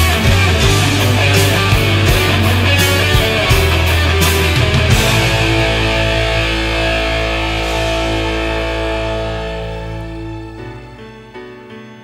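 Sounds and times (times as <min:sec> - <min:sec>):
distorted guitar chord ringing: 0:00.0 - 0:11.5.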